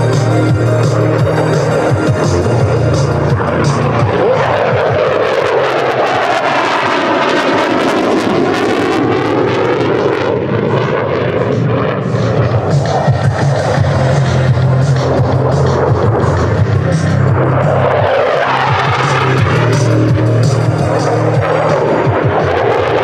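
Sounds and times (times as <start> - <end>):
loudspeaker music with a beat: 0.0 - 5.2, 12.2 - 23.0
jet engine rushing past: 0.0 - 23.0.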